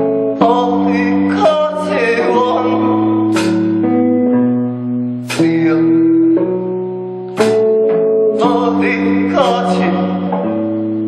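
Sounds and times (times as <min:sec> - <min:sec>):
guitar chords strummed: 0:00.0 - 0:11.0.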